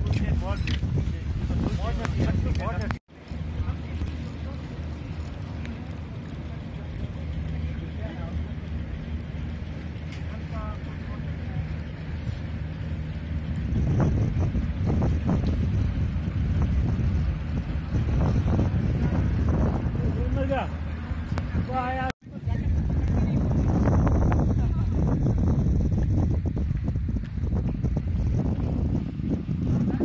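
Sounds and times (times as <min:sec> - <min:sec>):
steady low hum: 0:00.0 - 0:30.0
wind buffeting microphone: 0:00.0 - 0:30.0.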